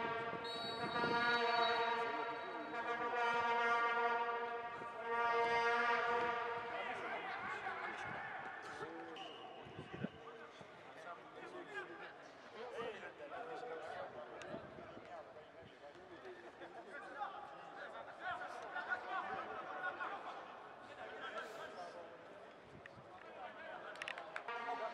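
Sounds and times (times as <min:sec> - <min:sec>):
horn blown in long blasts: 0:00.0 - 0:06.9.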